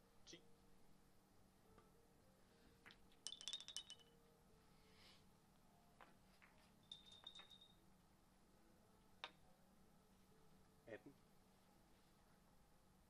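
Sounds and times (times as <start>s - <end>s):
billiard balls clicking and clinking: 2.8s - 4.2s, 6.0s - 7.8s.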